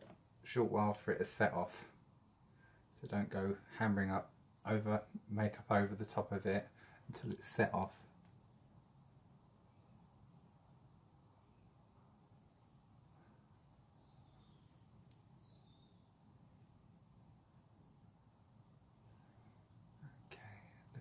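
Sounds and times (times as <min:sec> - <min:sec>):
faint high bird chirps: 0:08.3 - 0:16.7, 0:18.8 - 0:21.0.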